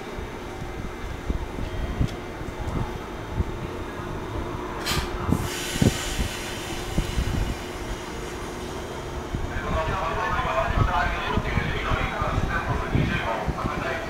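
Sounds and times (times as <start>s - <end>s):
electric train pulling out: 4.1s - 11.6s
compressed-air hiss: 5.0s - 8.7s.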